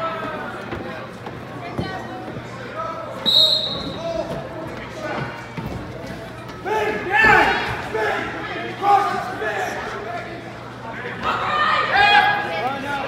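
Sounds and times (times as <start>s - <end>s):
referee's whistle: 3.2s - 4.0s
people shouting in a hall: 6.6s - 10.2s, 10.8s - 13.0s.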